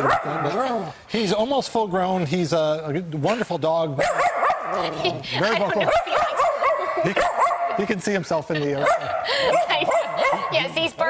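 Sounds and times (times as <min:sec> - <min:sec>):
small dog barking rapidly: 0:04.0 - 0:04.7, 0:05.9 - 0:07.8.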